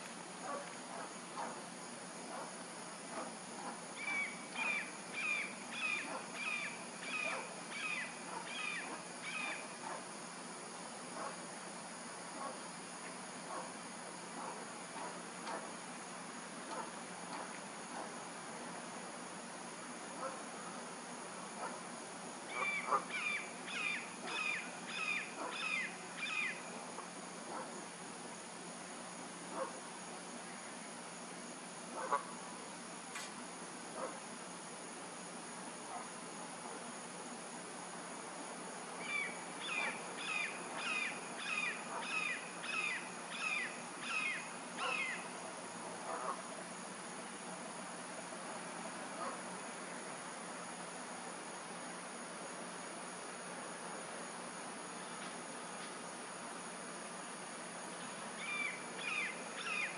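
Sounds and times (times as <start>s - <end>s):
high-pitched insect drone: 3.1s - 10.0s, 22.4s - 27.0s, 39.0s - 45.5s, 57.8s - 59.9s.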